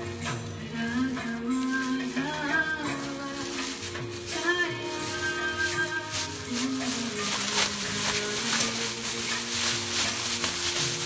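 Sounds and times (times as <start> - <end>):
plastic bag crinkling: 0.2 - 11.0.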